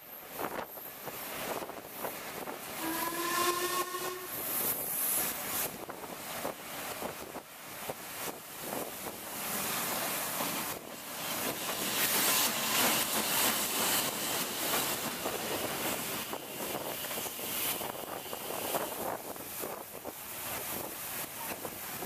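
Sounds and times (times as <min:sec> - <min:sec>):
rush and knocking of running train: 0:00.0 - 0:22.0
steam locomotive whistle: 0:02.8 - 0:04.7.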